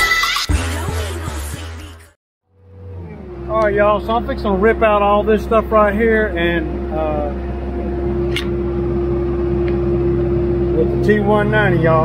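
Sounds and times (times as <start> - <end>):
diesel engine running: 0.6 - 12.0
man talking: 10.7 - 12.0.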